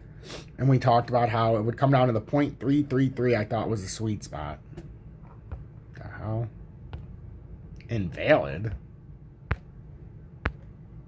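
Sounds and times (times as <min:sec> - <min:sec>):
fingertip tapping a touchscreen: 0:06.9 - 0:07.3, 0:09.5 - 0:10.8.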